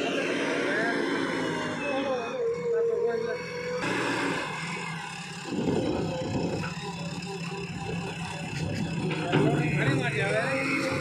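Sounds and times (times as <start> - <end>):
diesel engine running under load: 0.0 - 11.0.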